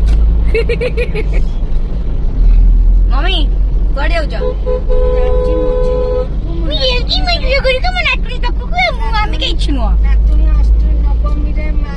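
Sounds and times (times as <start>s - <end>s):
low rumble inside car cabin: 0.0s - 11.9s
person laughing: 0.5s - 1.5s.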